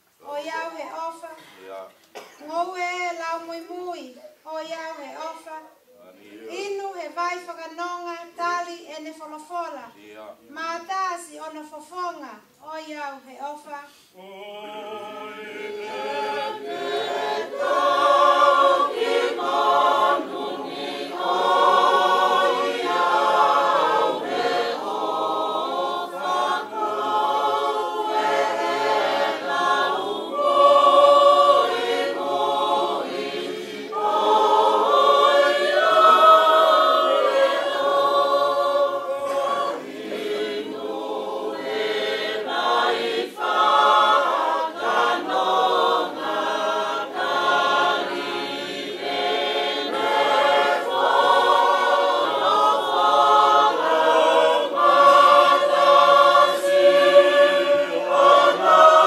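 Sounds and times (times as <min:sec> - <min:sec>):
group singing in harmony: 0:14.1 - 0:59.0.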